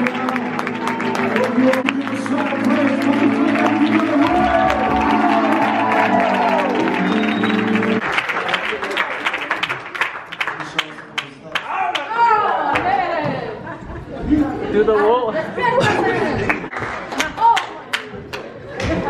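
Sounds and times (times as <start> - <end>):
live worship music: 0.0 - 8.2
congregation clapping: 0.0 - 12.2, 16.4 - 18.9.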